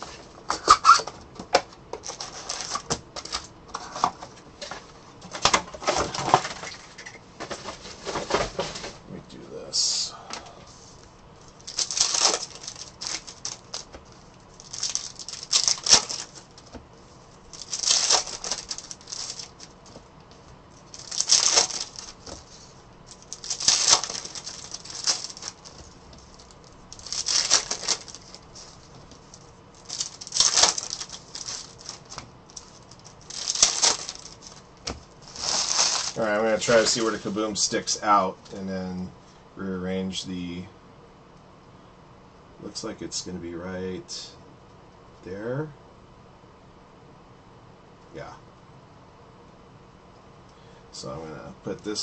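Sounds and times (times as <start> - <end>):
foil wrappers crinkling and tearing: 2.0 - 3.5, 11.5 - 16.8, 17.5 - 20.0, 20.7 - 37.5.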